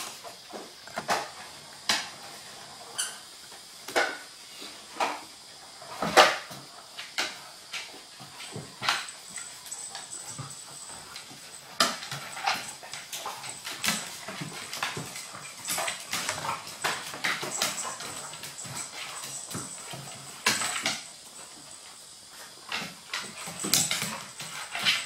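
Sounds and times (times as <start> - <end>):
dog claws clicking on wood floor: 8.4 - 21.1.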